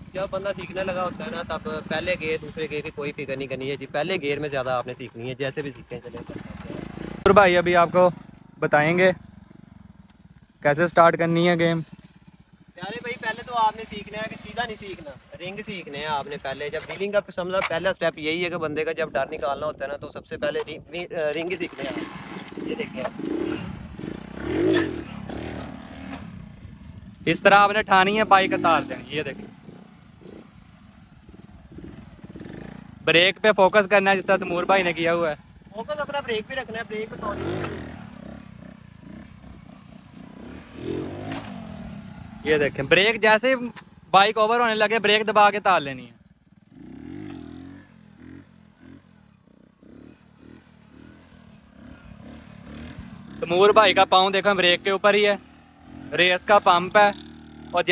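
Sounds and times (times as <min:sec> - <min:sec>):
motorcycle engine revving: 0:00.0 - 0:19.1, 0:21.3 - 0:57.9.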